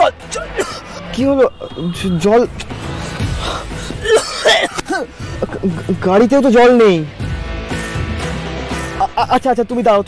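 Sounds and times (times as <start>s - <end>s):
background music: 0.0s - 10.0s
man coughing hard: 0.3s - 1.1s, 3.6s - 6.0s.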